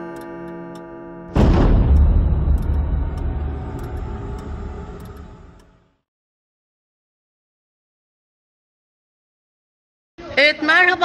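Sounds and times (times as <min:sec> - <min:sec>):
deep rumbling boom tail: 0:01.4 - 0:05.9
soft ticking: 0:02.0 - 0:05.7.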